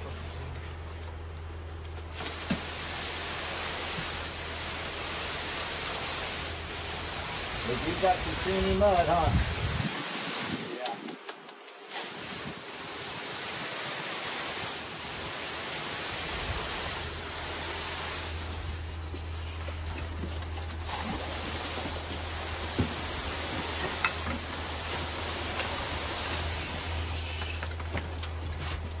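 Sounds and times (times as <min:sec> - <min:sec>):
pump humming: 0:00.0 - 0:11.2, 0:11.8 - 0:29.0
concrete rushing through hose: 0:01.9 - 0:29.0.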